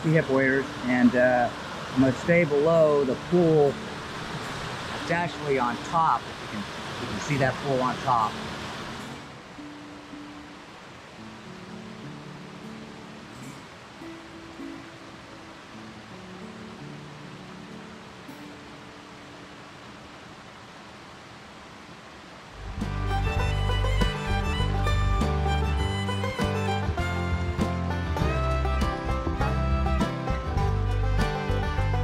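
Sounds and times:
falling water rushing: 0.0s - 32.0s
soft slow held music notes: 22.6s - 32.0s.

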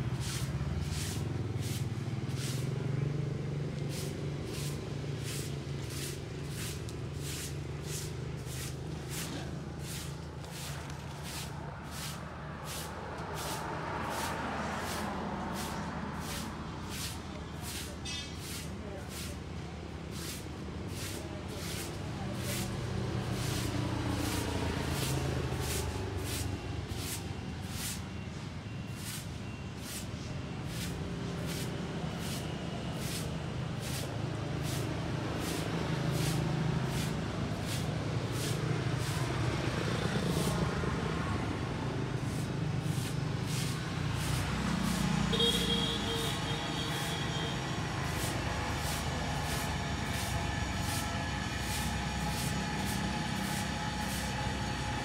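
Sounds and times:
broom sweeping leaves on paving: 0.0s - 55.0s
road traffic rumble: 0.0s - 55.0s.

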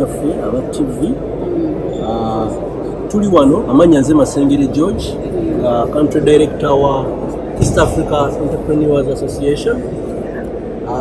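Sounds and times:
murmur of busy hall: 0.0s - 11.0s.

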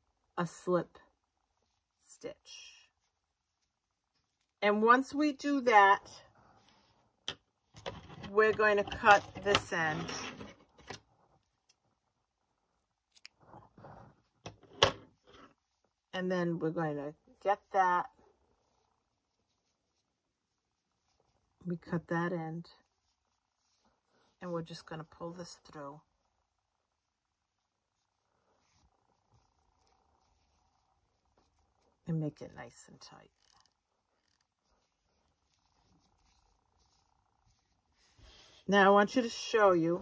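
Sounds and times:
faint yarn handling noise: 0.0s - 40.0s.

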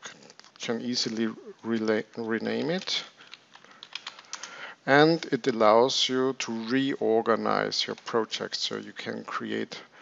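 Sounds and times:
computer keyboard typing: 2.6s - 4.6s.

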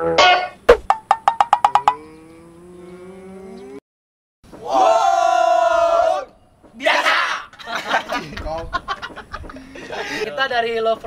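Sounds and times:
young men laughing: 7.4s - 10.5s.

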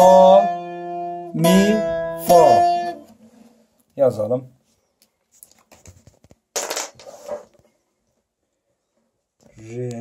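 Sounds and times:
short rustling scrape: 7.0s - 7.6s.

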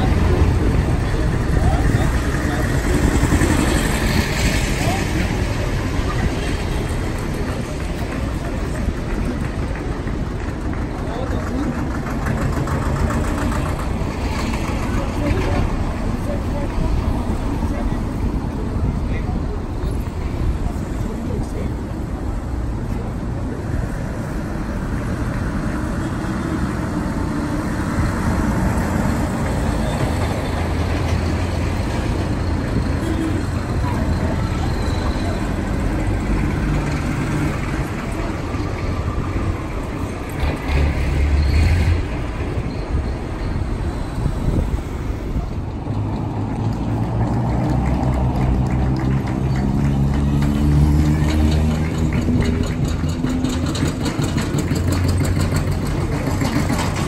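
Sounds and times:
car engines passing: 0.0s - 57.0s
tractor engines passing: 0.0s - 57.0s
old tractor engine knocking: 0.1s - 16.2s, 47.0s - 57.0s.

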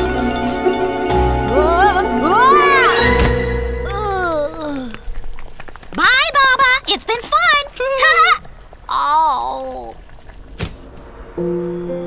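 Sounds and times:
cartoon character wordless voice: 8.0s - 10.0s.

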